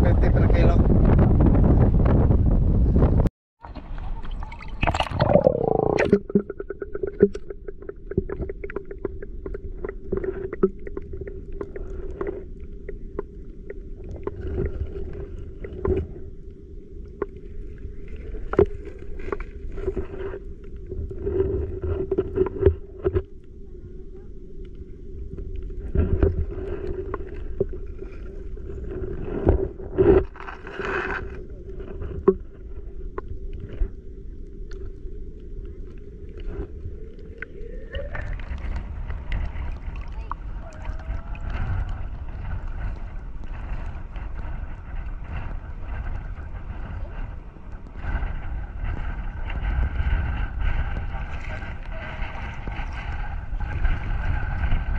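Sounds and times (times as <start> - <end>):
underwater hum: 0.6 - 54.9
rushing water bursts: 3.6 - 16.2.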